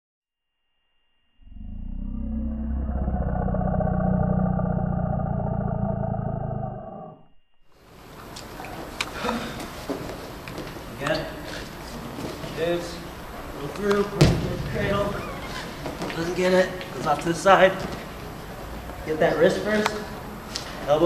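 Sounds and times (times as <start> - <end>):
gym room hum: 1.3 - 21.0
deep animal roar: 1.4 - 7.3
sharp knocks and squeaks: 14.2 - 16.0.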